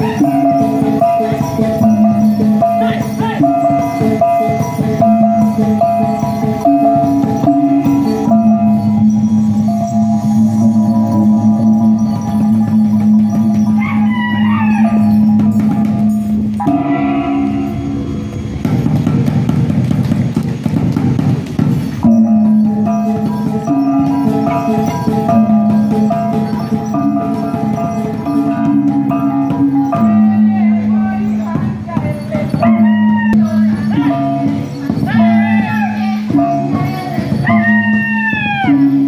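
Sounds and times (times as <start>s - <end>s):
voices chanting sliding notes: 0.0s - 18.7s, 22.0s - 39.0s
low held drone tone: 0.0s - 19.7s
gongs ringing: 0.0s - 39.0s
rapid drumming: 0.0s - 39.0s.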